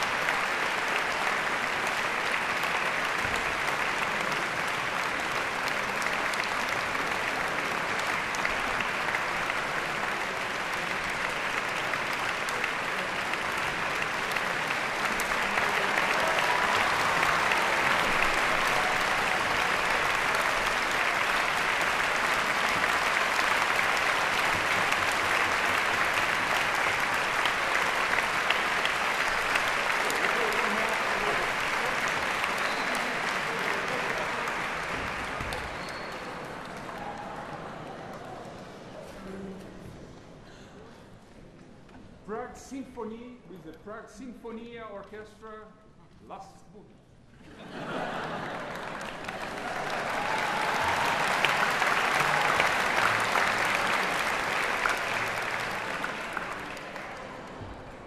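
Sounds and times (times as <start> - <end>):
audience applauding: 0.0 - 39.4, 47.6 - 58.0.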